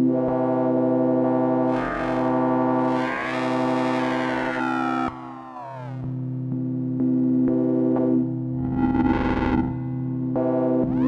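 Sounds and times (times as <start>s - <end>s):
synthesizer buzzy sustained tone: 0.2s - 11.0s
noisy distorted synth burst: 3.0s - 6.1s.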